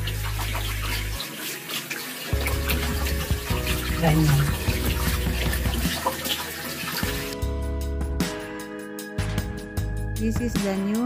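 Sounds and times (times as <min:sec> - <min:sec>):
water running from tap: 0:00.0 - 0:07.4
background music: 0:00.0 - 0:11.0.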